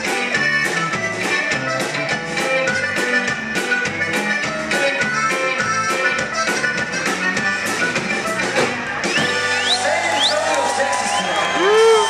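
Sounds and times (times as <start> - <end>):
accordion band playing: 0.0 - 10.9.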